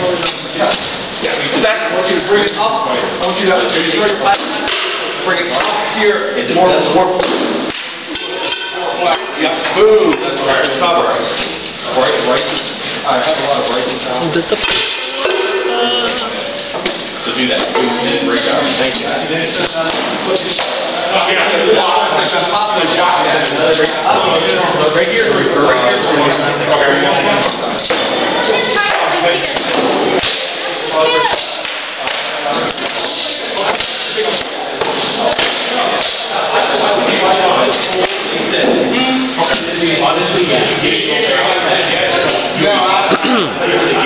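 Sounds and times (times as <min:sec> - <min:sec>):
voices talking: 0:00.0 - 0:44.0
held pitched tone: 0:14.3 - 0:16.8.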